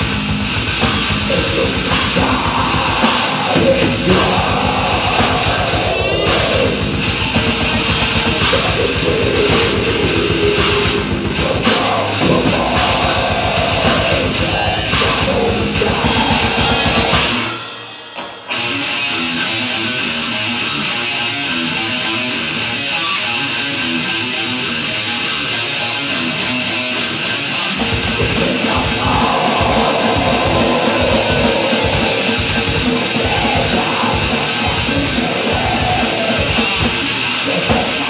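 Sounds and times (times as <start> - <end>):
rapid kick drum: 0.0 - 17.5, 27.8 - 38.0
death metal electric guitar: 0.0 - 38.0
cymbal crashes: 13.9 - 19.7.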